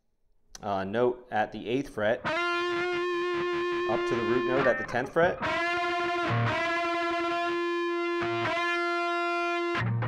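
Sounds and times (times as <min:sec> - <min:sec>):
distorted electric guitar bend: 0:02.2 - 0:10.0.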